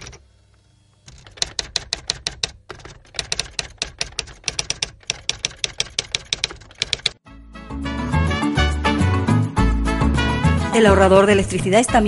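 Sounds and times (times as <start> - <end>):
typewriter keystrokes clicking: 1.1 - 7.2
lively music: 7.3 - 12.0.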